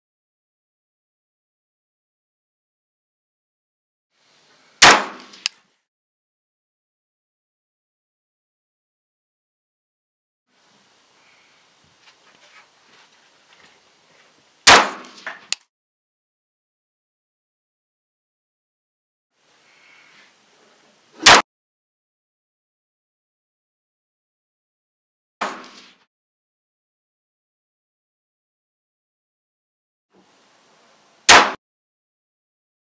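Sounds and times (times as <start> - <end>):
rifle shot: 4.8 - 5.6, 14.7 - 15.5, 21.2 - 21.4, 25.4 - 26.0, 31.3 - 31.6
sharp metallic click: 4.8 - 5.6, 14.7 - 15.7.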